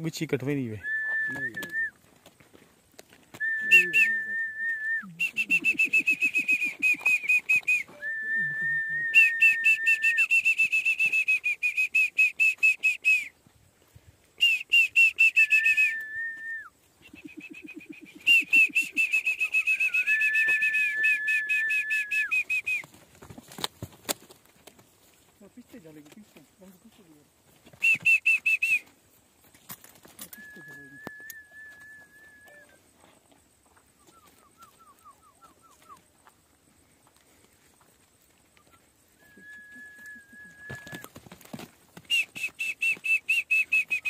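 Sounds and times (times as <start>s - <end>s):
person whistling trills: 0.8s - 2.0s, 3.4s - 13.3s, 14.4s - 22.9s, 27.8s - 28.8s, 30.2s - 32.8s, 34.0s - 36.0s, 39.2s - 41.1s, 42.1s - 44.0s.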